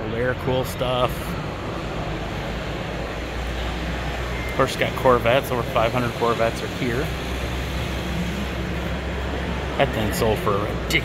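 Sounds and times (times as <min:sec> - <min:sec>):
busy indoor hall din: 0:00.0 - 0:11.0.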